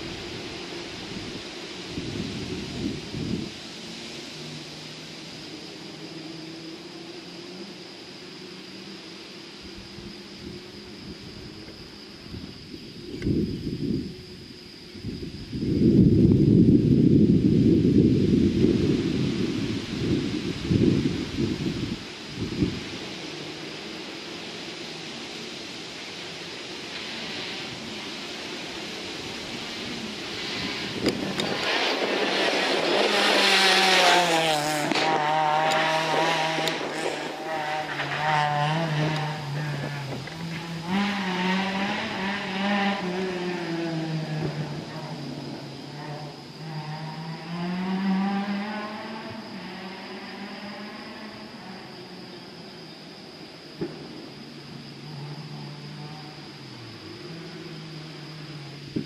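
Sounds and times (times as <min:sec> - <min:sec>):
wind rumble on microphone: 0:00.0 - 0:03.8, 0:09.6 - 0:23.3, 0:27.3 - 0:47.1, 0:58.8 - 0:59.0
rally car engine passing: 0:26.9 - 0:52.7, 0:54.0 - 0:59.0.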